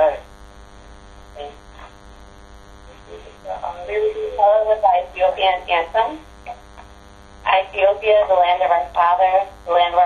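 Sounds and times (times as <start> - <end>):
person speaking on phone line: 0.0 - 0.2, 1.4 - 1.9, 2.9 - 6.6, 7.5 - 10.0
steady electrical hum: 0.0 - 10.0.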